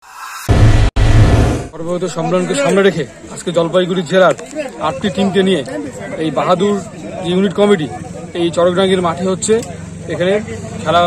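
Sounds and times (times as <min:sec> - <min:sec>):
man speaking: 0:01.8 - 0:04.2.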